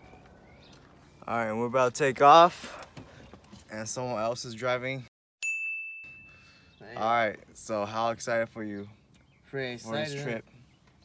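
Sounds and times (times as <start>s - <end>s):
high ding: 5.4s - 6.7s.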